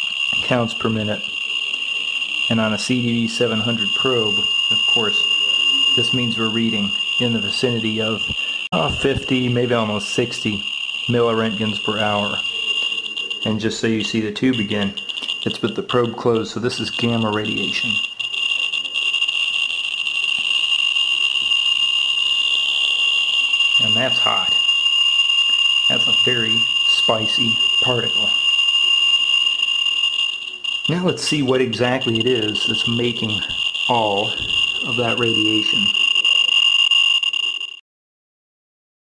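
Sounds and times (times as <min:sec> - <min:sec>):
geiger counter high-pitched whine: 0:00.0 - 0:37.8.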